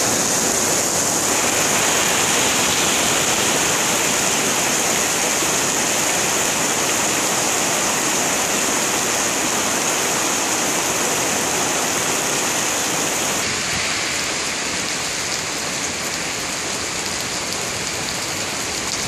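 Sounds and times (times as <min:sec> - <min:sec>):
rain on stone paving: 0:00.0 - 0:19.0.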